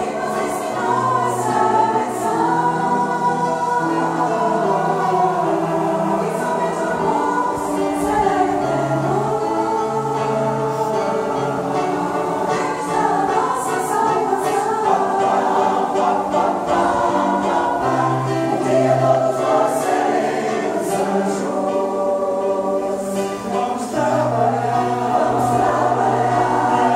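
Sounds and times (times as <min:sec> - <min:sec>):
mixed choir singing: 0:00.0 - 0:26.9.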